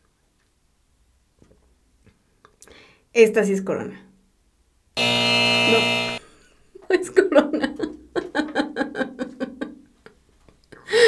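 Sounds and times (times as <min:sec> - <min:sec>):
wrong-answer buzzer: 0:05.0 - 0:06.2
woman laughing: 0:06.8 - 0:09.8.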